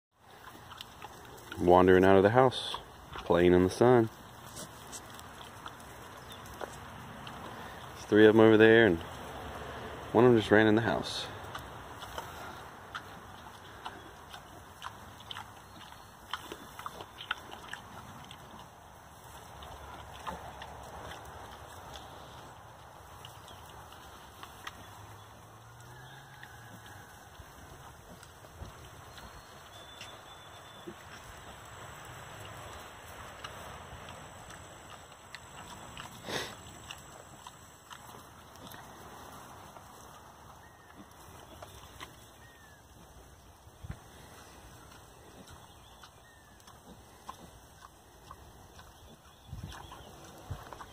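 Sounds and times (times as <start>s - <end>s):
pigs grunting and snuffling: 0.2s - 50.9s
rustling in straw: 4.1s - 8.0s.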